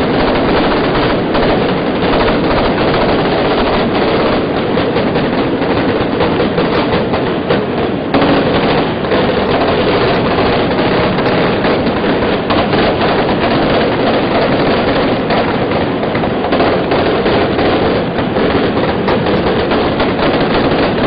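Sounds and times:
rapid crackling and rattling: 0.0s - 21.0s.

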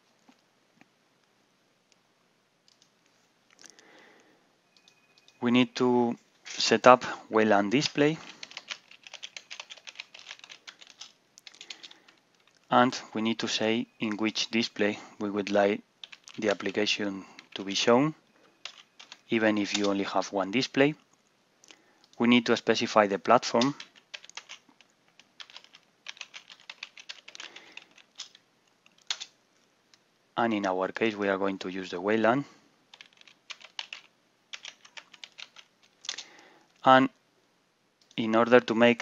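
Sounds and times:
typing on computer keyboard: 7.8s - 12.6s, 15.4s - 17.8s, 18.6s - 20.0s, 23.6s - 29.3s, 32.9s - 36.2s.

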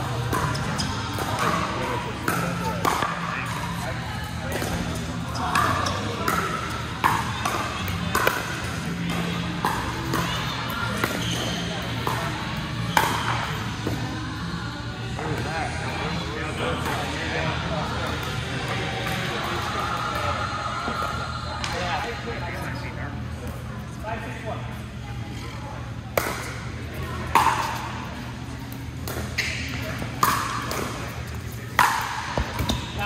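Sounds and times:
people talking: 0.0s - 33.0s.

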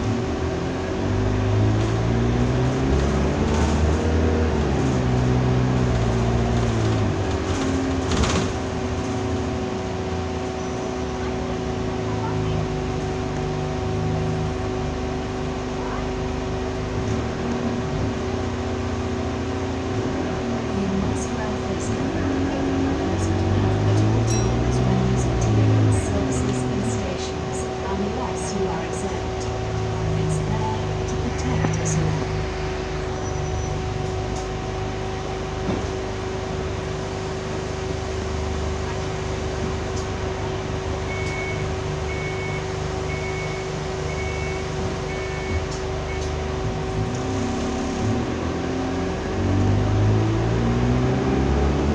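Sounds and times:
bus diesel engine running: 0.0s - 51.9s
constant tone: 20.7s - 35.5s
steady high whine: 25.6s - 38.5s.

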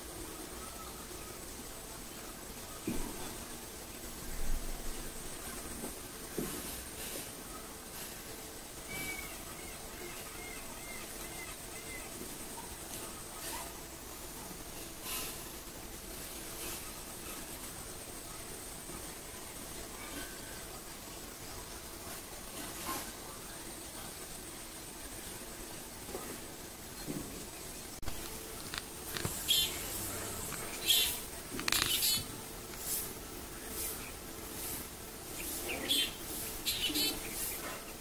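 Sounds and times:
faint outdoor background: 0.0s - 38.0s
bird short high calls: 8.9s - 12.2s.

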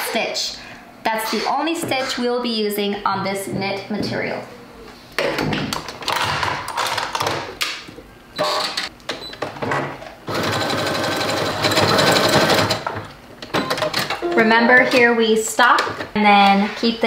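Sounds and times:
sewing machine stitching: 10.3s - 12.9s.

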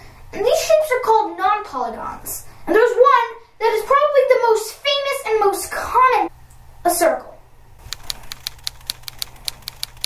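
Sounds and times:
typewriter keystroke clicks: 7.8s - 10.0s.

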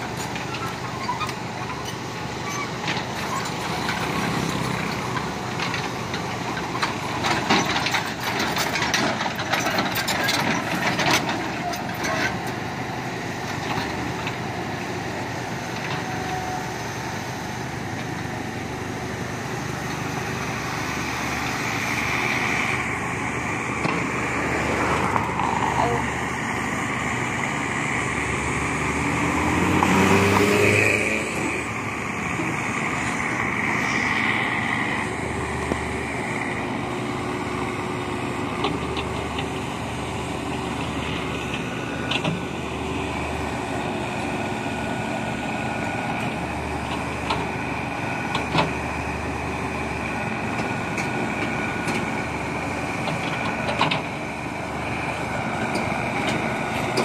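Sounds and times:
excavator engine under load: 0.0s - 57.0s.

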